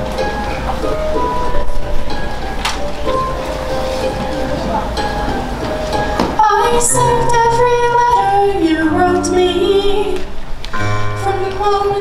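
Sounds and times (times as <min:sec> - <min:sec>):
musical accompaniment: 0:00.0 - 0:12.0
woman singing long notes: 0:06.4 - 0:12.0.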